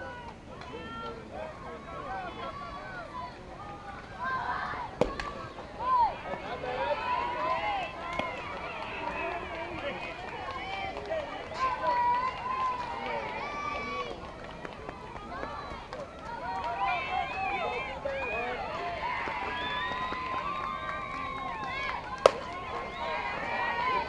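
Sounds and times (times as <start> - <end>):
voices chattering and calling out: 0.0 - 24.0.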